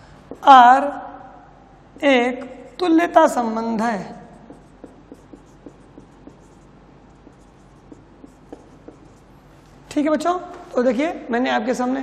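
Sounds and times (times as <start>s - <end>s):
marker writing on whiteboard: 0.2s - 0.7s, 4.3s - 10.7s.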